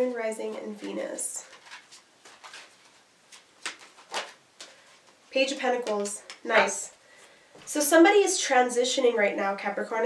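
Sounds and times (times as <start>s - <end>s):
cards being shuffled: 0.0s - 6.7s.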